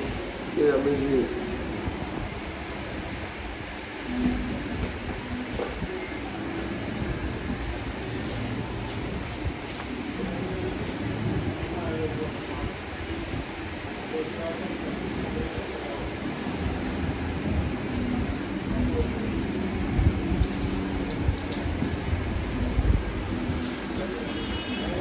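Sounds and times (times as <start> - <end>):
low rumble of street noise: 0.0 - 25.0.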